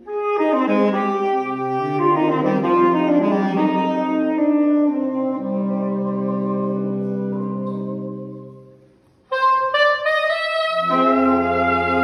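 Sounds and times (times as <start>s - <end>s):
lower saxophones: 0.0s - 12.0s
saxophone rising line: 0.1s - 12.0s.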